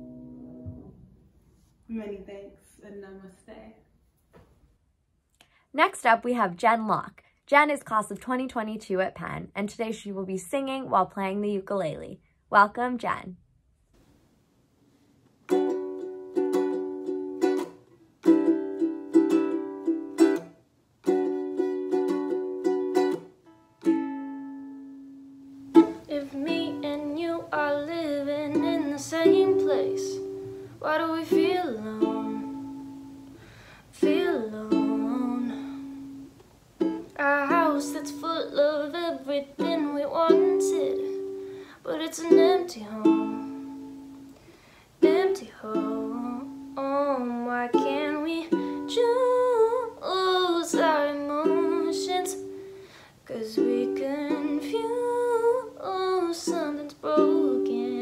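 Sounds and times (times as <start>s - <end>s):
ukulele strumming: 0.0s - 1.2s, 15.4s - 58.0s
woman singing: 25.9s - 33.1s, 33.9s - 36.2s, 37.0s - 43.9s, 45.0s - 52.6s, 53.2s - 58.0s.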